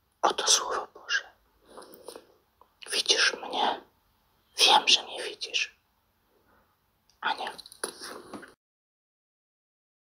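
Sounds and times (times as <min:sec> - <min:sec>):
person whispering: 0:00.2 - 0:03.9, 0:04.5 - 0:05.8, 0:07.1 - 0:08.6.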